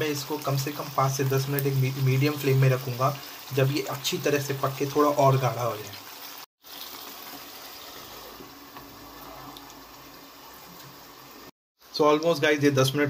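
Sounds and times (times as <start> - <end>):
gravy simmering with soft hiss: 0.0 - 12.6.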